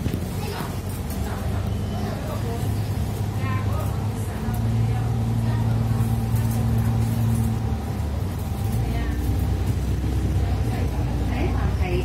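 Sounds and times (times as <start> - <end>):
bus engine low hum: 0.0 - 12.0.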